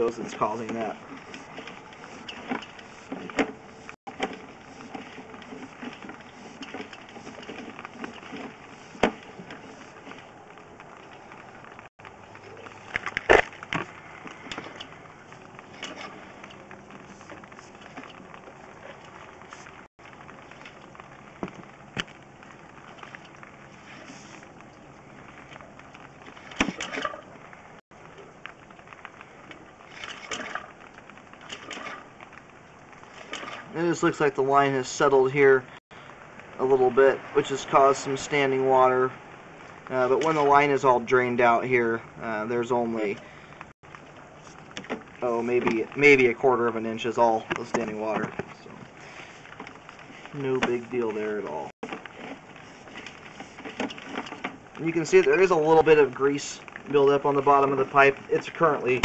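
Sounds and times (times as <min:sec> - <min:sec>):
low steady noise: 0:00.0 - 0:59.0.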